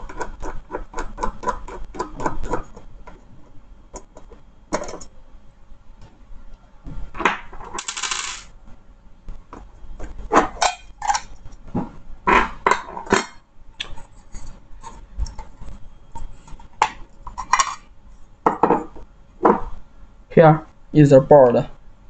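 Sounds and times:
scraping rasp: 0.0 - 2.9.

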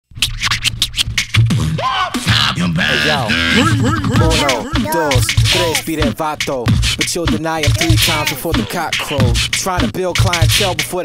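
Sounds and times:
hip hop beat: 1.6 - 11.0
bass line: 2.5 - 6.2
turntable scratching: 2.9 - 11.0.

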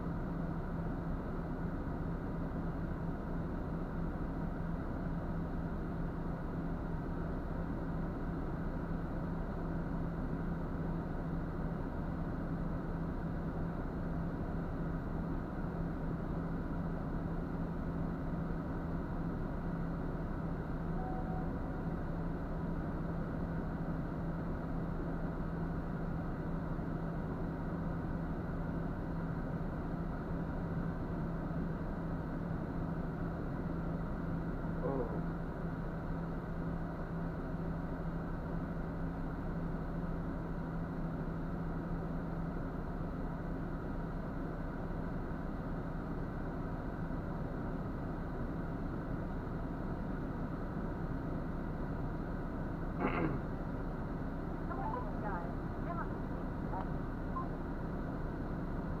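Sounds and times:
diesel engine idling: 0.0 - 59.0.

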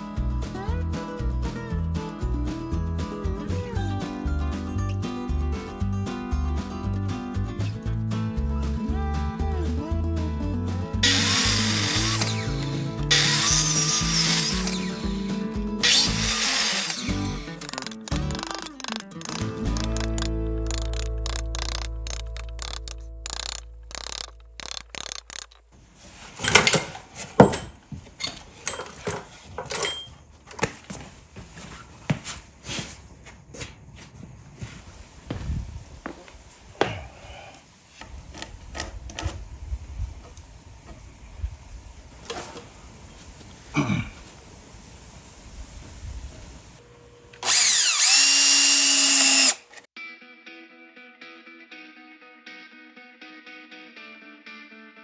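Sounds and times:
guitar music: 0.0 - 25.6, 50.0 - 55.0
miter saw cutting wood: 11.0 - 25.6, 47.4 - 49.8
wooden pieces knocking: 16.5 - 25.6.

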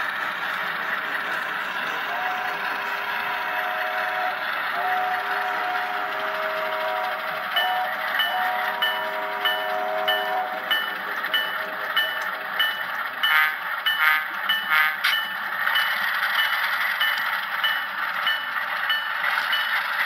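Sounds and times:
model train whistle chord: 1.9 - 12.3, 13.2 - 15.1.

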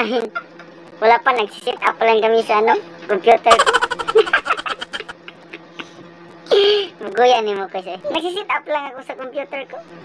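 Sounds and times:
man giggling: 3.5 - 6.0.

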